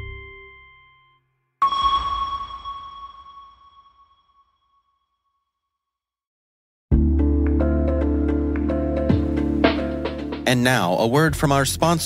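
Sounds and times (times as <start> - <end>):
bell-like chime with low boom: 0.0 - 4.8.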